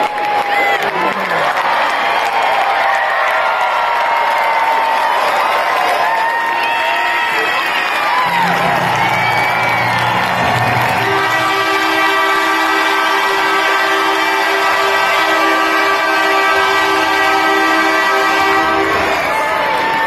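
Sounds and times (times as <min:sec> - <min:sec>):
crowd cheering: 0:00.0 - 0:20.0
arena horn blast: 0:08.2 - 0:19.6.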